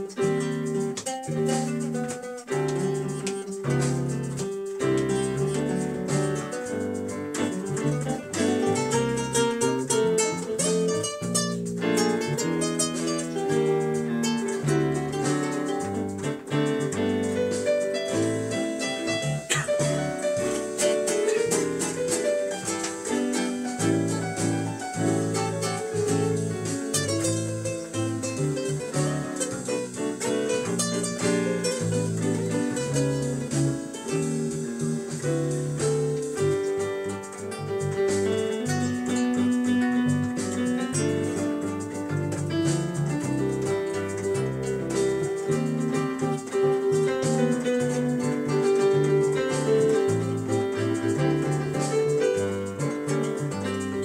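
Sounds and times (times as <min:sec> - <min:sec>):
electric bass guitar: 0:00.0 - 0:54.0
piano chords: 0:00.0 - 0:54.0
plucked acoustic guitar: 0:00.0 - 0:54.0.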